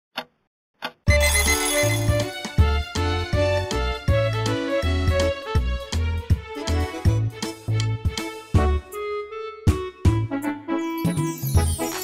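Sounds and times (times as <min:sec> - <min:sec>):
cartoon clock ticks: 0:00.1 - 0:01.8
alarm clock bell ringing: 0:01.1 - 0:02.2.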